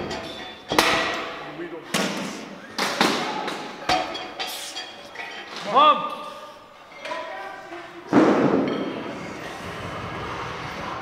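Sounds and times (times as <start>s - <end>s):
gym noise and effort hum: 0.0s - 11.0s.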